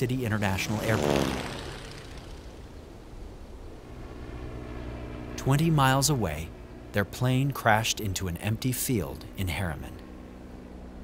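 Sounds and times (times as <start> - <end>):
propeller aircraft engine drone: 0.0 - 11.0.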